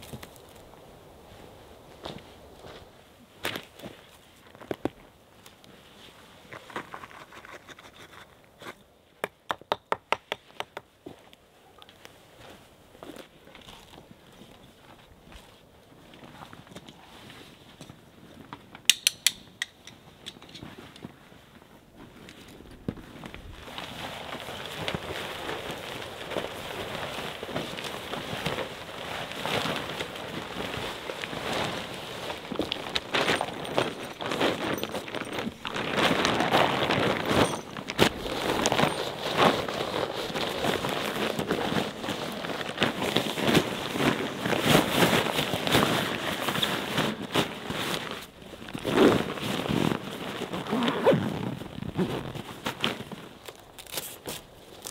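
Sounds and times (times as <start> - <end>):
tent fabric rustling and crinkling: 0.0 - 9.1, 10.9 - 18.8, 20.0 - 54.9
sharp click: 18.9 - 20.6.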